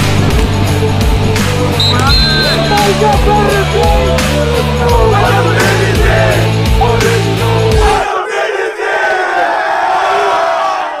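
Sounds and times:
rock music with heavy beat: 0.0 - 8.0
group shouting together: 2.7 - 11.0.

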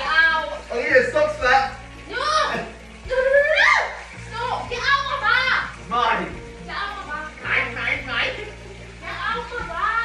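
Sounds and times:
background music: 0.0 - 10.0
high-pitched child-like voices: 2.1 - 5.8.

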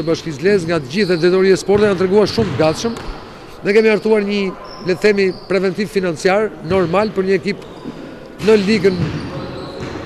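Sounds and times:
speech with heavy echo: 0.0 - 10.0.

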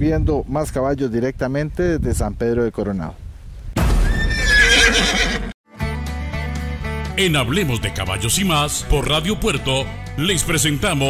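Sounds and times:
horse whinnying: 4.0 - 5.6.

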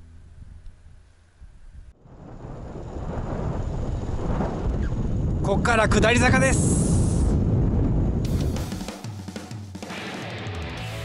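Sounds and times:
wind buffeting microphone: 0.4 - 8.8.

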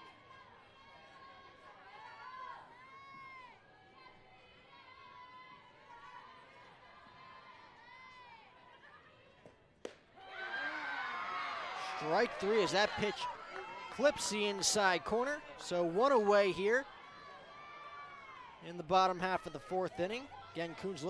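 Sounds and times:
voices calling out: 10.3 - 21.0.

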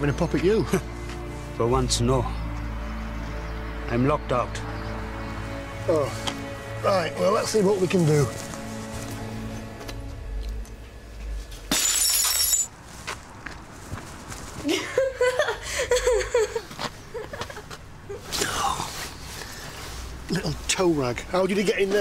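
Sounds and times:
glass bottle smashing: 11.7 - 12.7.

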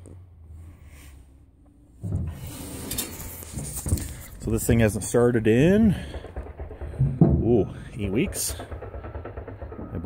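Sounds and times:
handheld camera rustling: 2.4 - 4.4.

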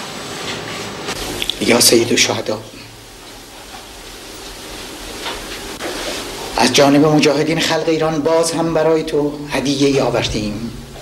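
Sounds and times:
hiss-like background noise: 1.0 - 11.0.

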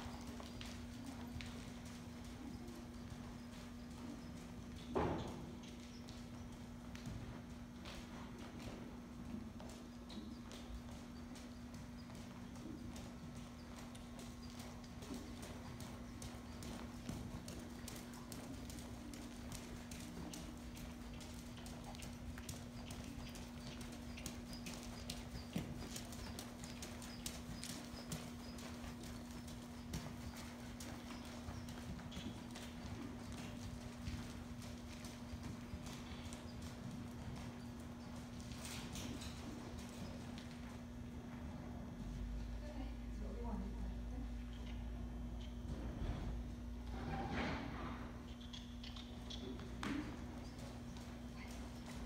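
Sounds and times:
horse hoofbeats on sand: 0.0 - 41.4.

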